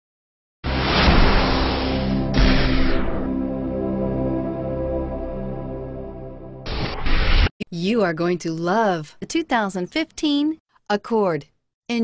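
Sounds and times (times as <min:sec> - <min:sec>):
loud rushing whoosh: 0:00.7 - 0:03.6
low steady drone: 0:00.7 - 0:06.7.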